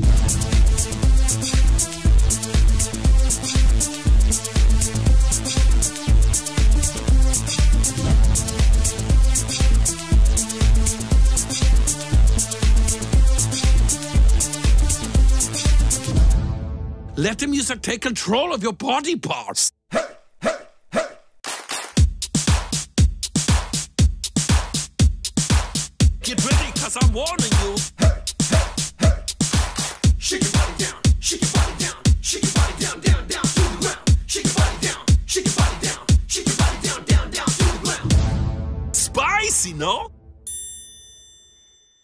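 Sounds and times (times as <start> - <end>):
dance music: 0.0 - 16.2, 22.3 - 38.3, 39.0 - 40.1
dog barks: 19.9 - 21.2, 28.0 - 29.2
bell-like ding: 40.4 - 42.0.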